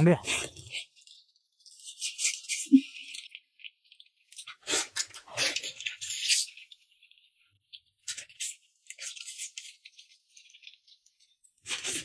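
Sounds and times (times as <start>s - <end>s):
wet chewing and smacking: 0.4s - 12.0s.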